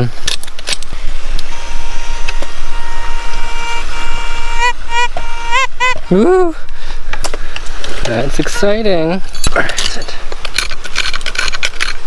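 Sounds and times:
metal detector beeping: 1.4s - 6.2s.

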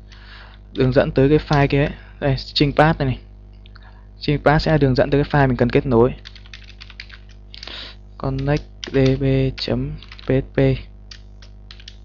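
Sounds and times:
low steady hum: 0.0s - 12.0s
computer keyboard typing: 6.2s - 10.4s, 11.1s - 12.0s.

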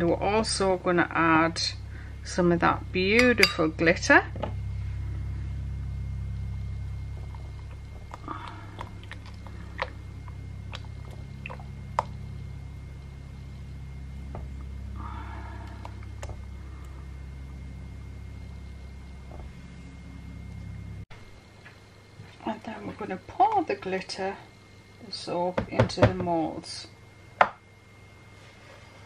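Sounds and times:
low hum: 0.0s - 25.4s.

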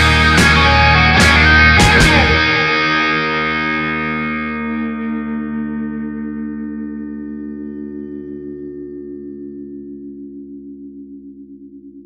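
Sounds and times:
rock band hit: 0.0s - 4.3s
distorted electric guitar chord: 0.0s - 10.2s.

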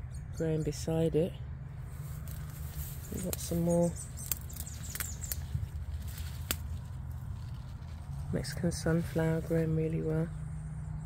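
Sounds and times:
footsteps on dry stems: 1.8s - 9.7s.

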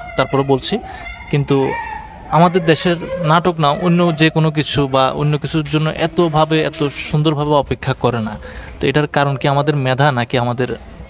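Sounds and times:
man speaking: 0.0s - 10.9s.

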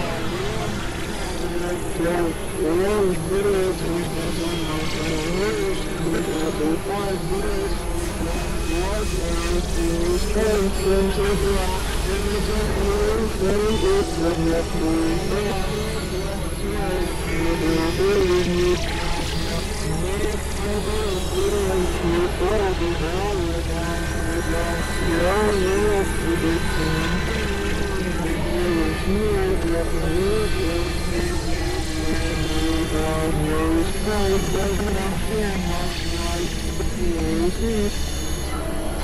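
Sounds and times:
steady low hum: 0.0s - 39.0s
synthesizer drones: 0.0s - 39.0s.

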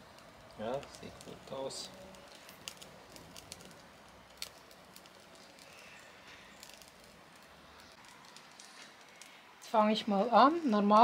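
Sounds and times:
wood fire crackling: 0.0s - 11.0s.

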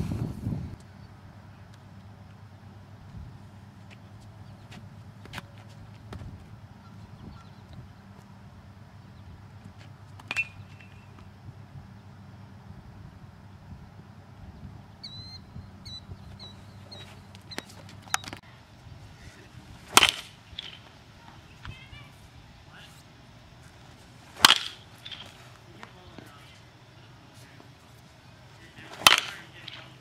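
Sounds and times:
low steady outdoor rumble: 0.0s - 30.0s
bat cracking a baseball: 19.8s - 20.9s, 24.3s - 25.6s, 28.8s - 30.0s.

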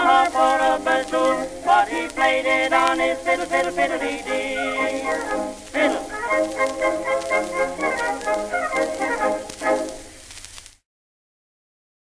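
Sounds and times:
orchestra on old record: 0.0s - 10.8s.

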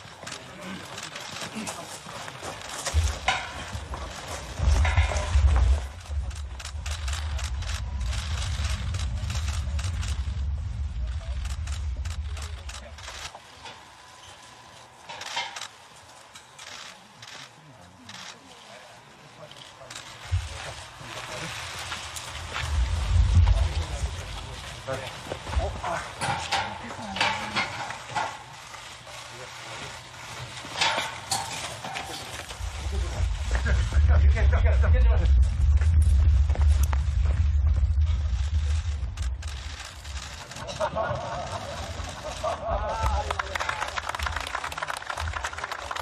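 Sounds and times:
low voices: 0.0s - 46.0s
low rumble: 2.9s - 13.4s, 20.2s - 26.6s, 32.2s - 45.6s
camera shutters clicking: 11.4s - 13.4s, 15.1s - 15.8s, 16.5s - 17.5s, 38.8s - 40.7s.

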